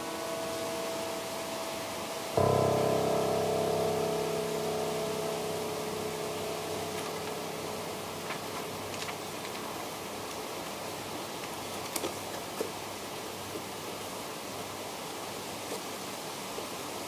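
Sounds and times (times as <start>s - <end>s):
piano chords ringing: 0.0s - 11.7s.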